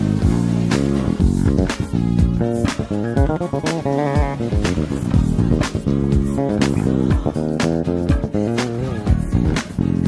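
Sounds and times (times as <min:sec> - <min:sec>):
bass guitar run: 0:00.0 - 0:10.0.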